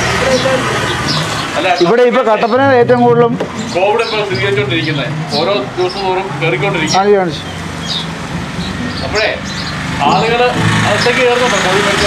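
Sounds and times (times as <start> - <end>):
street traffic: 0.0 - 12.0
vehicle engine hum: 0.0 - 12.0
men talking: 0.2 - 12.0.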